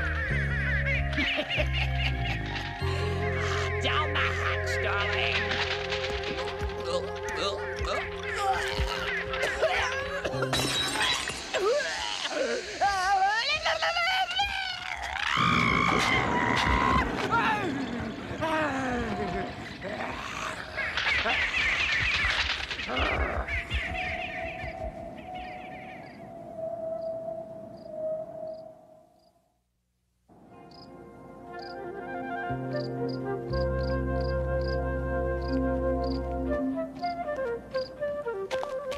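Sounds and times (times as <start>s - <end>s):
cartoon birds squawking: 0.1s - 26.2s
glass bottle shattering: 10.4s - 11.7s.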